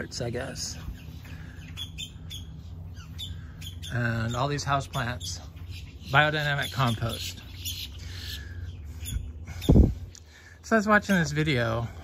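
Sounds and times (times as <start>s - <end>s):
birds calling: 0.0s - 12.0s
low background hum: 0.0s - 12.0s.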